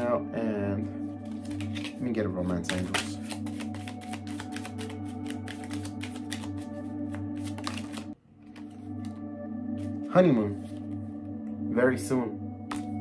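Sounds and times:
ambient background music: 0.0 - 13.0
cards being shuffled: 1.2 - 9.2, 12.7 - 13.0.

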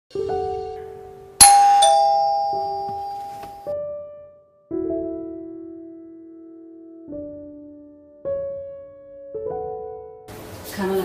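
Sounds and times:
electronic doorbell chime: 1.4 - 3.8.

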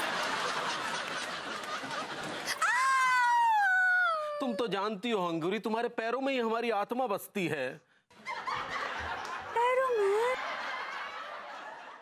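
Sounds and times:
audience laughter: 0.0 - 2.5, 8.2 - 12.0.

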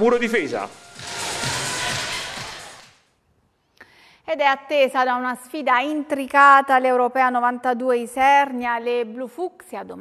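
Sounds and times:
background music: 0.0 - 3.1.

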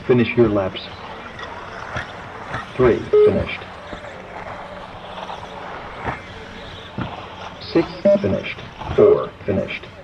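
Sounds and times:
radio-controlled buggy motor: 0.0 - 10.0.

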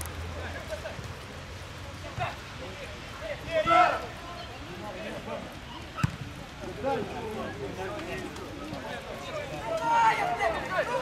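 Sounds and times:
players shouting: 2.1 - 11.0.

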